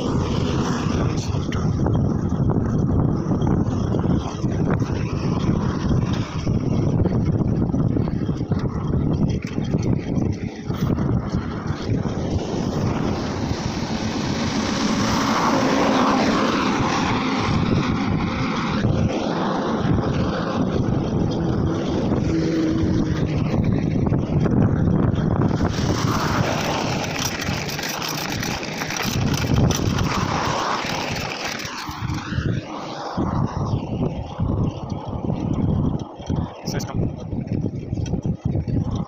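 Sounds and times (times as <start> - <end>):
bicycle tyre road noise: 0.0 - 39.0
wind buffeting microphone: 0.0 - 39.0.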